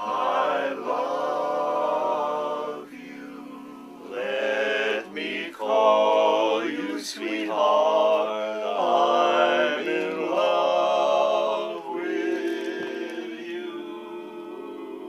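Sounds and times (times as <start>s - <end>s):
men singing a cappella harmony: 0.0s - 15.0s.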